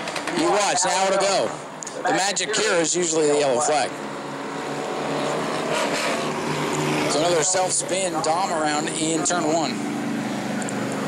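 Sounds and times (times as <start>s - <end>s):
car engine droning: 2.4s - 11.0s.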